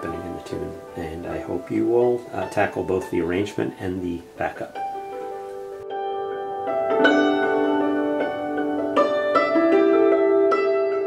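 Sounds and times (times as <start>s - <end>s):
hammered dulcimer waltz: 0.0s - 11.0s.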